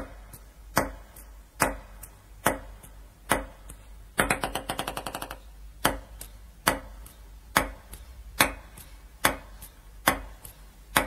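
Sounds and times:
ping-pong ball bouncing to rest: 0:04.2 - 0:06.9
ping-pong ball striking: 0:04.2 - 0:11.0.

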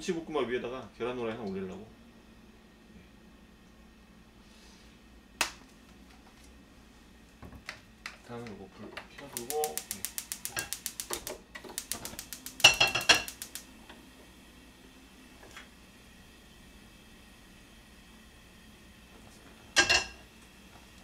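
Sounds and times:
stove igniter ticking: 0:07.6 - 0:14.2
metal pan clattering on grate: 0:12.6 - 0:13.3.

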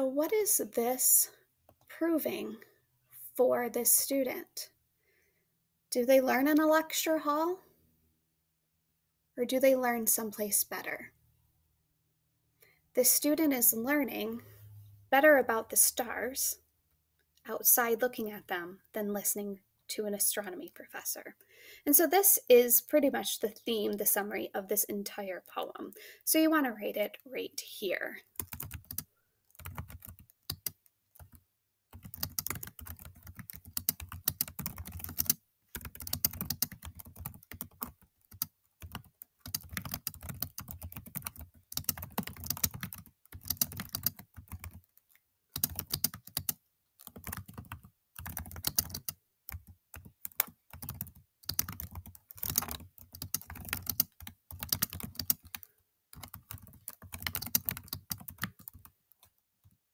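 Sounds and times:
typing on computer keyboard: 0:28.3 - 0:59.8.

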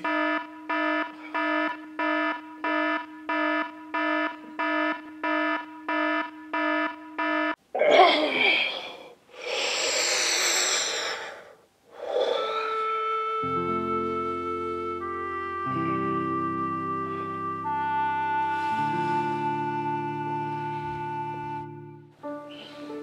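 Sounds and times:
alarm clock beeping: 0:00.0 - 0:07.6
heavy breathing: 0:08.3 - 0:13.0.

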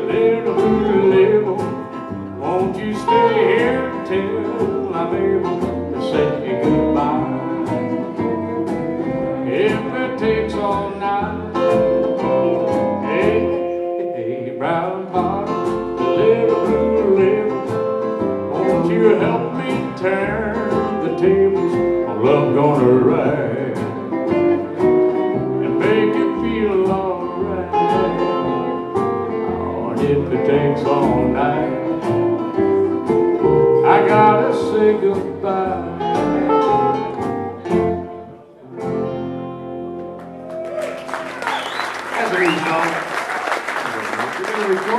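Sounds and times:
man singing: 0:00.0 - 0:08.4, 0:09.0 - 0:33.0, 0:33.8 - 0:37.1
acoustic guitar strumming: 0:00.0 - 0:40.5
bass line: 0:00.0 - 0:40.8.

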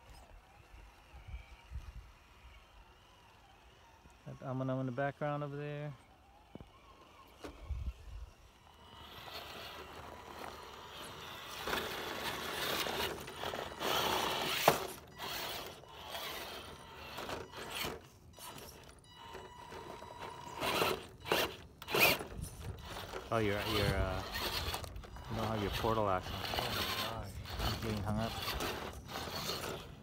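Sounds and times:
electric drivetrain whirring: 0:00.0 - 0:30.0
tyres scraping on rock: 0:08.7 - 0:30.0.

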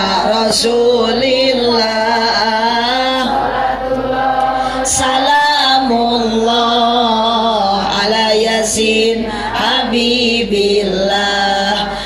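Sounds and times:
voices chanting devotional song: 0:00.0 - 0:12.0.

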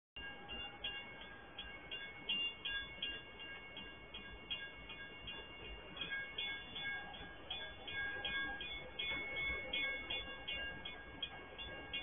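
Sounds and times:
level-crossing warning alarm ringing: 0:00.2 - 0:12.0.

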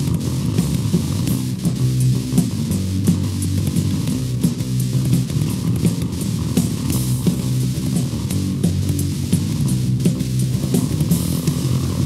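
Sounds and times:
drums with cymbal hits: 0:00.0 - 0:12.0
electric guitar and bass riff: 0:00.0 - 0:12.0.

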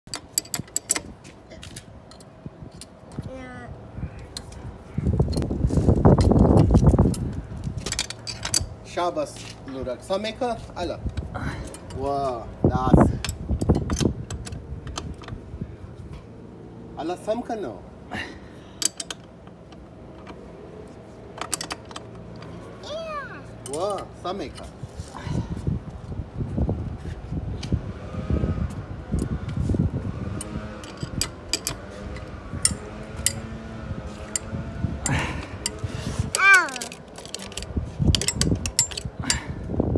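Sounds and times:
spanner clinking on metal: 0:00.1 - 0:02.9, 0:07.8 - 0:08.8, 0:11.6 - 0:12.1, 0:18.8 - 0:19.8, 0:21.4 - 0:22.5, 0:30.4 - 0:33.5, 0:34.1 - 0:39.5
wrench clicking on metal: 0:30.4 - 0:33.4, 0:35.6 - 0:39.4.

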